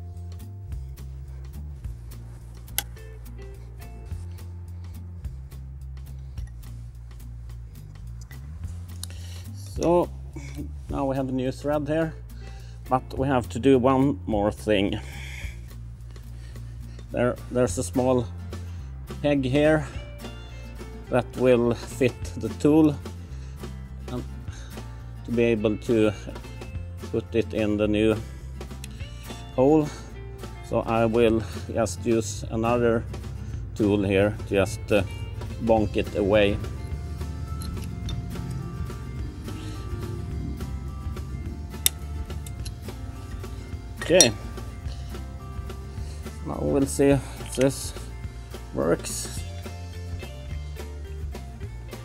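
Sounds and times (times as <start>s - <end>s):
quiet music with low sustained notes: 0.0s - 52.0s.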